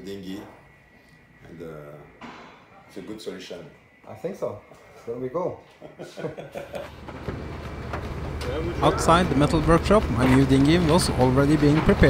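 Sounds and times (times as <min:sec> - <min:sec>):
low machinery rumble: 0:06.9 - 0:12.0.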